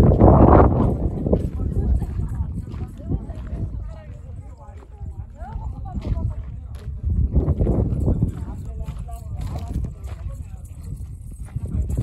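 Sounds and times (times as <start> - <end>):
faint indistinct voices: 0.0 - 12.0
wind buffeting microphone: 0.0 - 12.0.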